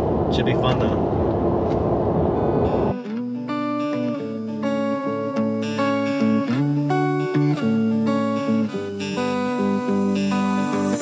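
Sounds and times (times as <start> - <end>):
road and engine rumble in car: 0.0 - 2.9
guitar music: 1.5 - 11.0.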